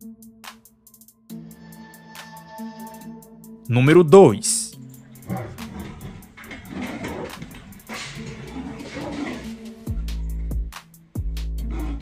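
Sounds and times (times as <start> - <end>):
lion and tiger growling: 5.2 - 10.6, 11.6 - 12.0.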